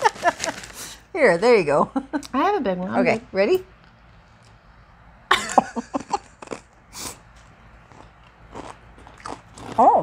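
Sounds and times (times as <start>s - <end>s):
person laughing: 5.3s - 6.5s
crunchy chip crunch: 6.0s - 10.0s.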